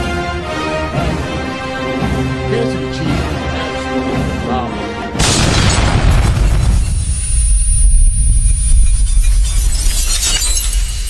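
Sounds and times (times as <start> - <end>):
deep rumbling boom: 5.2 - 9.6
loud shattering crash: 5.2 - 11.0.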